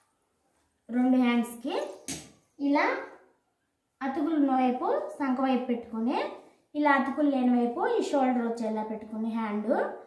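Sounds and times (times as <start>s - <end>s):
woman speaking: 0.9s - 2.0s, 4.0s - 10.0s.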